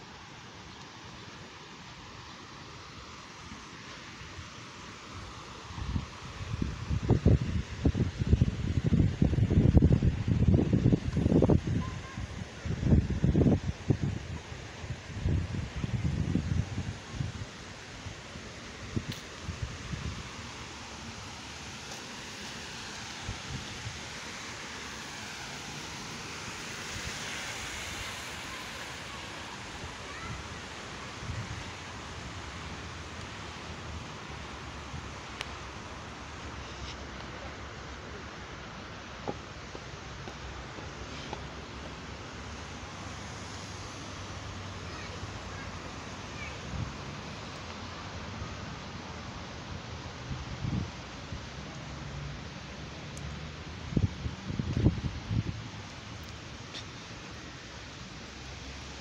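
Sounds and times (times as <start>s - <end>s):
fountain water splashing: 0.0s - 59.0s
wind buffeting microphone: 5.8s - 17.5s.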